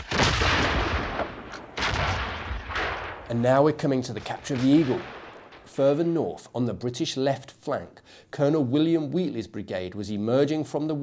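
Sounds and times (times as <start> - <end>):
massed gunfire volleys: 0.0 - 3.5, 4.2 - 5.7.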